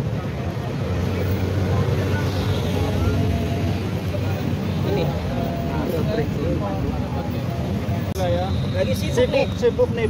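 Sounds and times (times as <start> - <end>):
market voices: 0.0 - 10.0
street traffic engines humming: 0.0 - 10.0.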